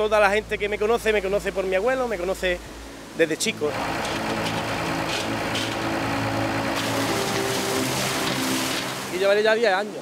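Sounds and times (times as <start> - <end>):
water gushing out of a tank: 3.7 - 9.3.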